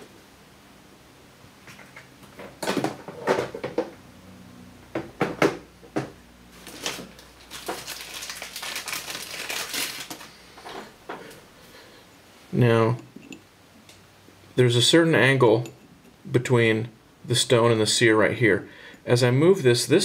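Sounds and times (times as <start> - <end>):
rustling and scraping: 6.5 - 11.4.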